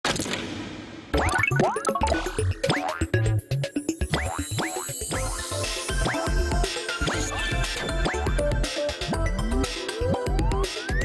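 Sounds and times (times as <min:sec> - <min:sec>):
cartoon boing sound effects: 0:01.2 - 0:03.2, 0:04.1 - 0:04.9.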